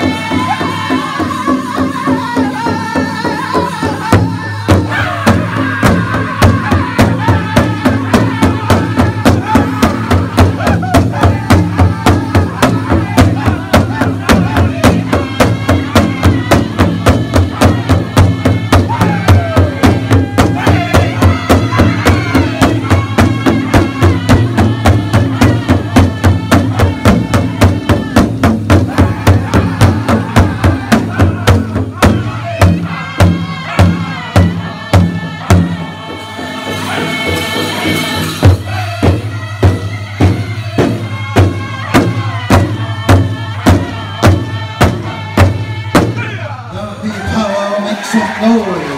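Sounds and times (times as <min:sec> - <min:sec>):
large hide drum beating fast: 0:00.0 - 0:35.9, 0:36.9 - 0:46.4
group singing together: 0:00.0 - 0:48.9.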